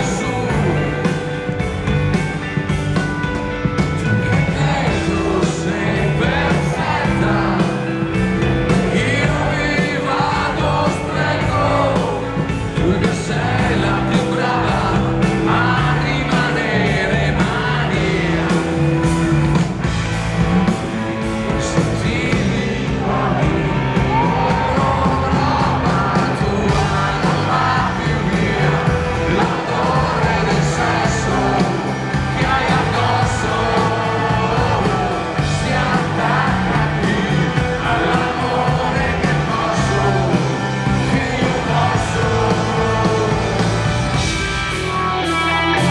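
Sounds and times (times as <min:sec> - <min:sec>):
person singing: 0:00.0 - 0:02.0, 0:04.0 - 0:19.1, 0:21.2 - 0:44.2
live rock band playing: 0:00.0 - 0:45.9.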